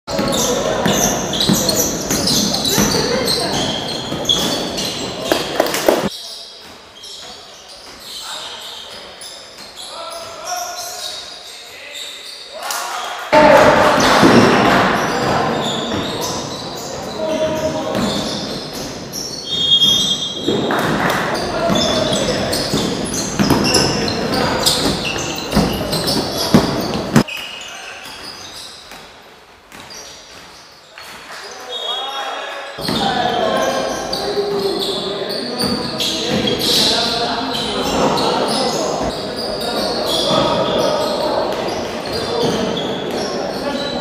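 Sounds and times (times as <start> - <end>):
players' voices echoing: 0.1 - 44.0
basketball bouncing on floor: 22.7 - 24.0.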